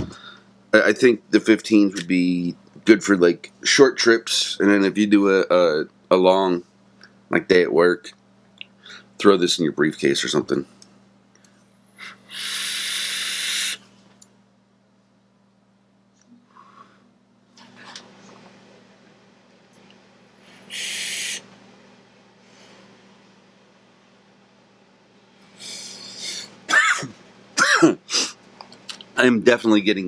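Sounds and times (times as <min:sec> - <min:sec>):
airy hiss of vape draw: 0:12.3 - 0:13.8, 0:20.6 - 0:21.5
man coughing hard: 0:26.7 - 0:28.4.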